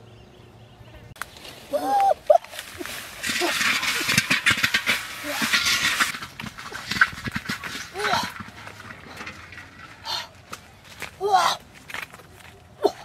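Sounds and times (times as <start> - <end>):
grass and leaves rustling: 1.1 - 13.0.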